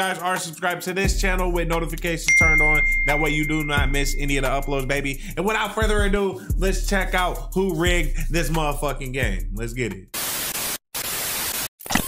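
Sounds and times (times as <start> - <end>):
tv static hiss: 10.2 - 11.7.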